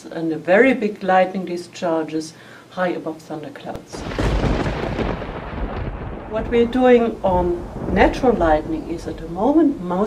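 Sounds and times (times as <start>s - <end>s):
thunder rumbling: 3.9s - 10.0s.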